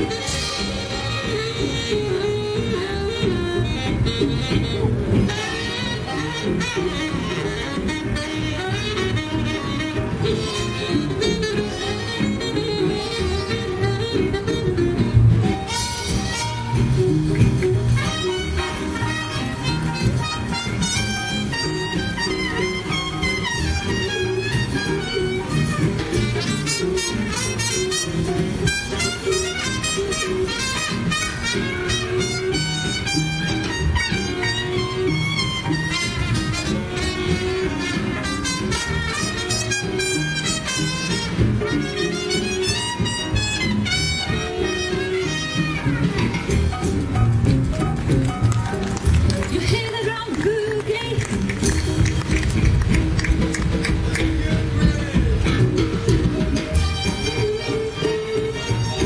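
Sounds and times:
trumpets playing: 0.0 - 50.4, 51.0 - 59.0
swing big band playing: 0.0 - 59.0.

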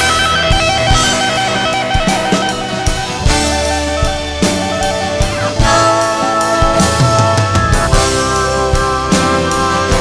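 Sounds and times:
bass: 0.0 - 10.0
drum hits: 0.0 - 10.0
electric guitar repeating figure: 0.0 - 10.0.

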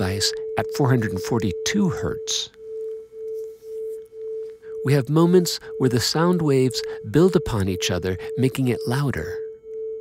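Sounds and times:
person speaking: 0.0 - 2.6, 4.6 - 9.5
two pure tones beating: 0.0 - 10.0.

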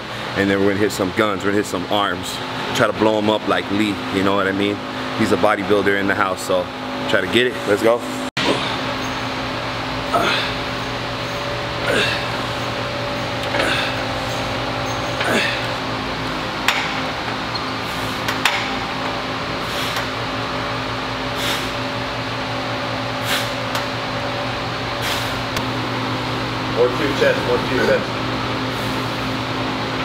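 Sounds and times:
air conditioning hum: 0.0 - 30.0.

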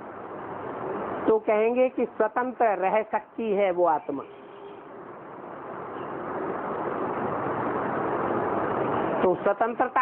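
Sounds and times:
vehicle rushing noise: 5.1 - 9.2.

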